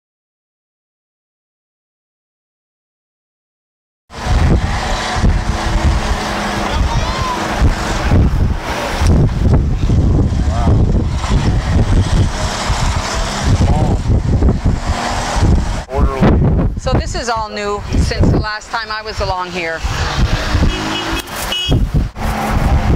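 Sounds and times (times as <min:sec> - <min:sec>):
engine and road rumble: 0:04.1 - 0:22.9
wind buffeting microphone: 0:04.1 - 0:22.9
indistinct voices: 0:04.2 - 0:21.2.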